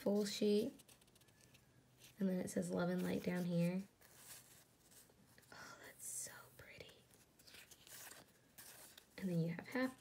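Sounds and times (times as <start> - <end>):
paper sheets rustling: 2.8 - 5.4, 7.0 - 10.0
person whispering: 5.4 - 7.2.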